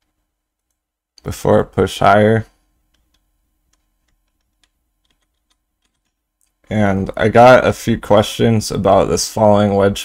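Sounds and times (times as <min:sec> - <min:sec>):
computer keys clicking: 0:00.0 - 0:00.8, 0:02.9 - 0:06.6.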